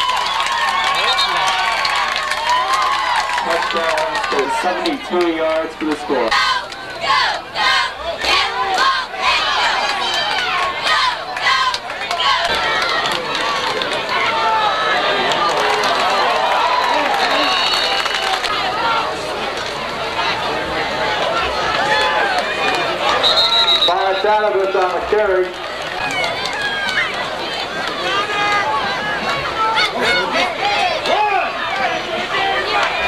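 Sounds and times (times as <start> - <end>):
repeated crowd shouts: 0.0 - 19.4, 20.2 - 33.0
crowd cheering and shouting: 0.0 - 33.0.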